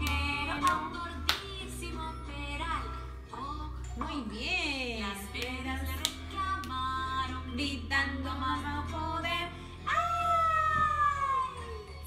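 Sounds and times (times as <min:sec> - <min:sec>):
woman singing children's song: 0:00.0 - 0:12.0.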